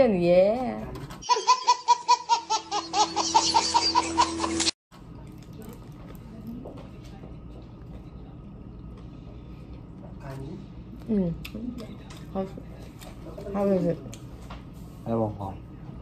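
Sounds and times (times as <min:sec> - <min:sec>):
baby laughing: 0:01.2 - 0:04.8.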